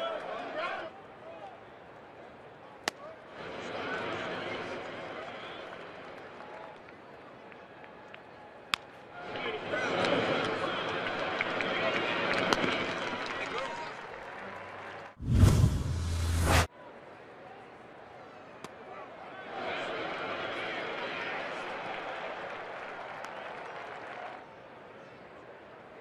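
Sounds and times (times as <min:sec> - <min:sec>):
ballpark crowd murmur: 0:00.0 - 0:15.2, 0:16.7 - 0:26.0
whooshing transition effect: 0:15.2 - 0:16.7.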